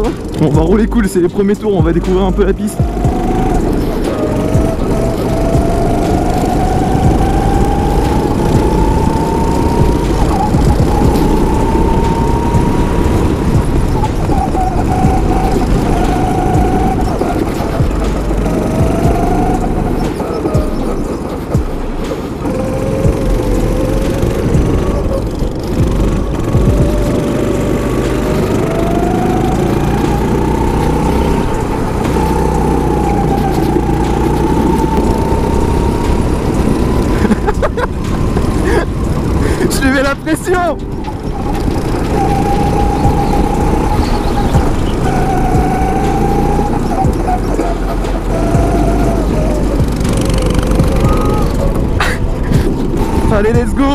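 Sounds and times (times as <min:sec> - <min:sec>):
go-kart engine revving: 0:00.0 - 0:53.9
wind and vibration rumble: 0:00.0 - 0:53.9.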